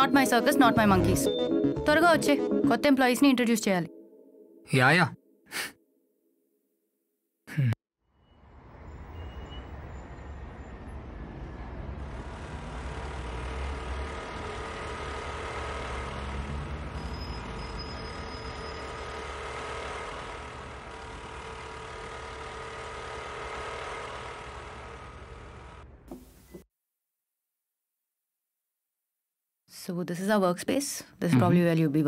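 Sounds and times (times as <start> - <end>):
street traffic: 8.1 - 26.2
scooter engine running: 12.0 - 26.0.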